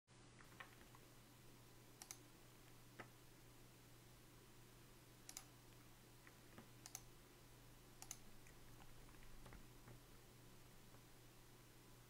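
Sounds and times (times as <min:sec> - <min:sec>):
faint steady hum: 0:00.1 - 0:12.0
computer clicks: 0:02.0 - 0:02.3, 0:05.2 - 0:05.6, 0:06.6 - 0:07.1, 0:08.0 - 0:09.6.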